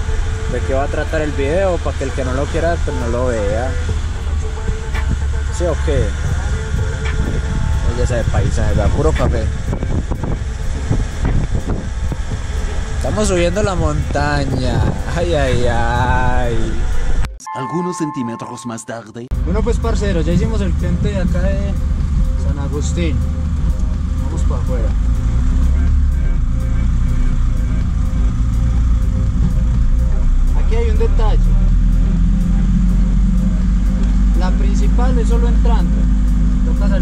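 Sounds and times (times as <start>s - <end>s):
road and wind noise: 0.0s - 17.3s, 19.3s - 37.0s
truck engine rumbling: 0.0s - 17.3s, 19.3s - 37.0s.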